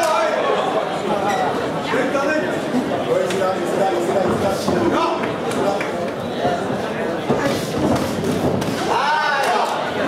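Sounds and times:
crowd shouting: 8.7 - 10.0.

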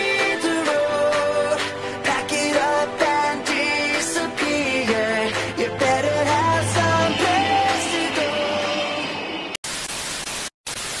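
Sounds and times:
television static hiss: 9.6 - 11.0.

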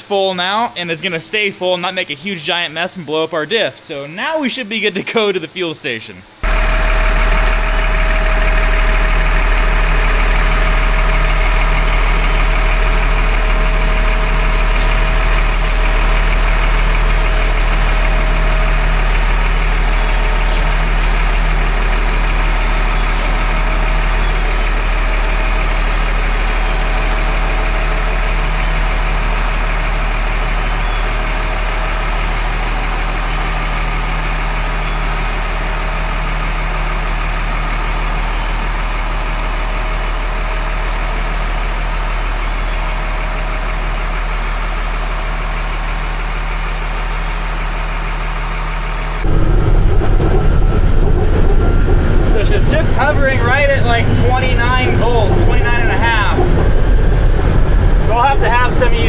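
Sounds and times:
truck diesel engine running: 6.3 - 59.0.

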